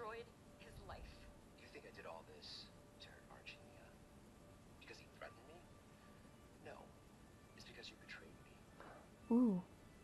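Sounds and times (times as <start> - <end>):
faint tv dialogue from small speaker: 0.0 - 10.0.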